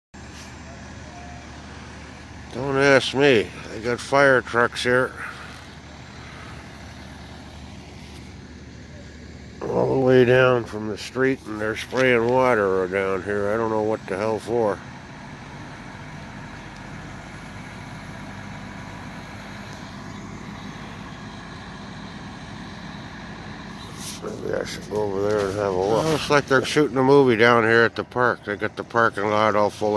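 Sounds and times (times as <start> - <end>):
fire truck pump engine drone: 0.2 - 29.9.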